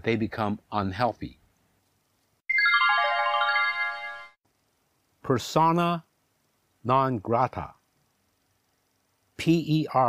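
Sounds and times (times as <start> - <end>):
bright ringing notes run: 2.5 - 4.4.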